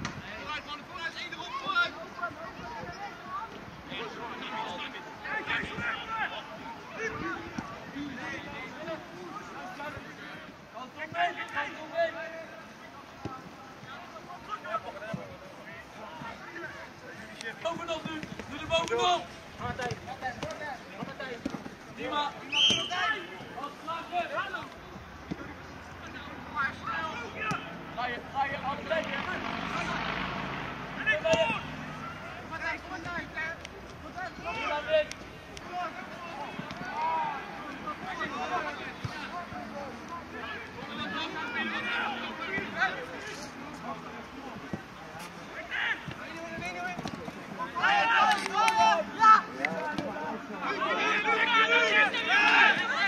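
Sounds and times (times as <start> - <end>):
people calling out and talking: 0.0 - 53.0.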